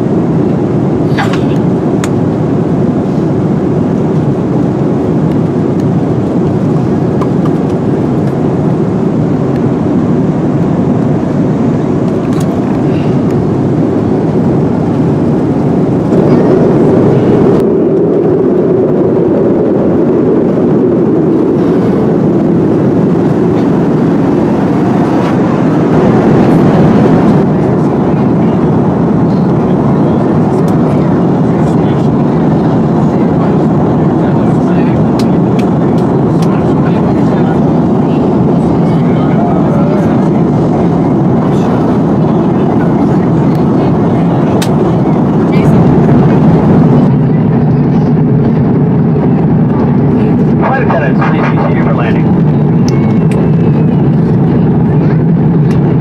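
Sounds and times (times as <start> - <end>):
aircraft cabin engine roar: 0.0 - 56.0.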